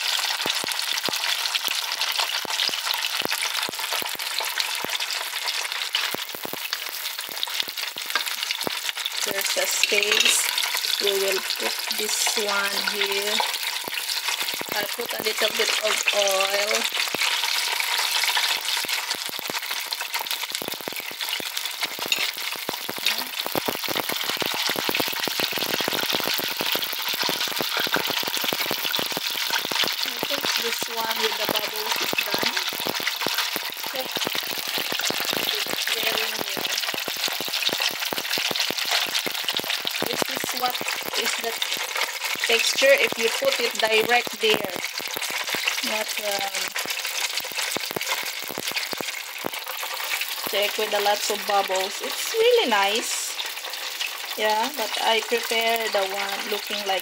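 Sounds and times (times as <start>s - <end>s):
food sizzling in hot oil: 0.0s - 57.0s.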